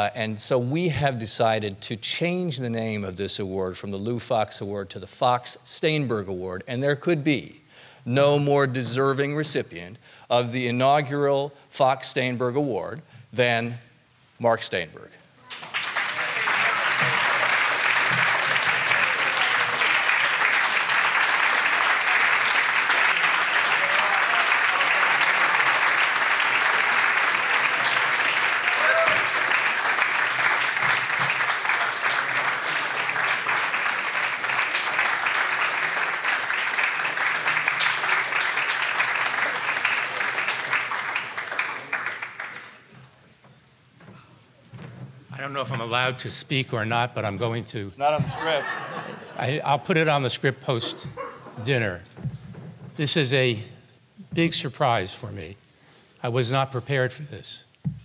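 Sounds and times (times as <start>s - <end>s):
audience applauding: 15.5s - 42.9s.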